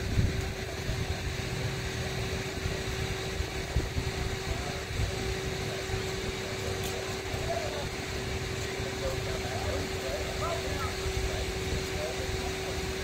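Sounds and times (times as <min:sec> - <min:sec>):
machinery rumble and hum: 0:00.0 - 0:13.0.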